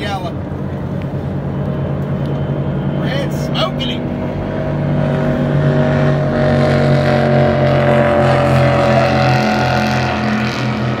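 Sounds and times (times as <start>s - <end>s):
powerboat engine drone: 0.0s - 11.0s.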